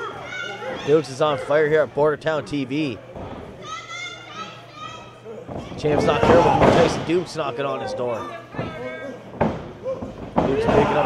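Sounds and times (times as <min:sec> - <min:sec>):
crowd murmur in large hall: 0:00.0 - 0:11.0.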